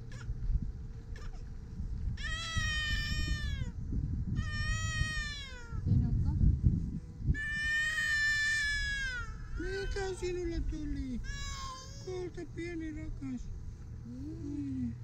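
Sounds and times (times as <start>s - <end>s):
wind rumbling on microphone: 0.0s - 11.7s
young child crying: 2.2s - 3.8s, 4.4s - 5.9s, 7.4s - 10.5s, 11.3s - 12.1s.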